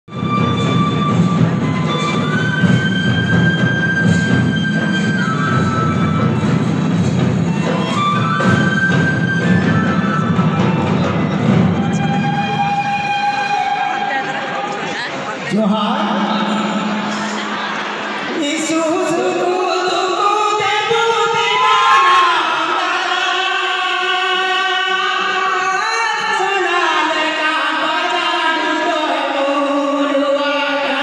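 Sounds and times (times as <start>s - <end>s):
barrel drums beating: 0.1s - 13.4s.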